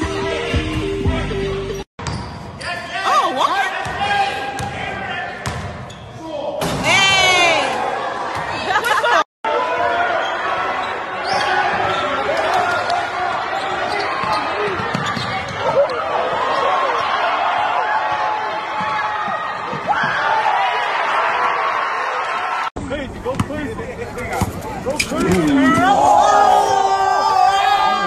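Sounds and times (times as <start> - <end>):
voices shouting in echoing hall: 6.1 - 22.7, 25.0 - 28.0.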